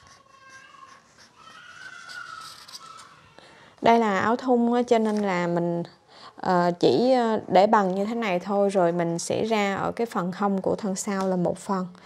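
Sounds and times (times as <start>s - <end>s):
marker pen squeaking on paper: 0.0s - 3.2s.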